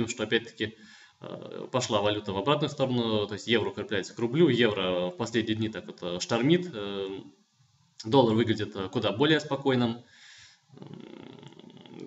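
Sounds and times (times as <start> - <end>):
man speaking: 0.0 - 7.4, 8.0 - 10.1, 10.8 - 12.0
man breathing: 0.8 - 1.2, 10.1 - 12.0
creaky throat rasp: 10.8 - 12.0.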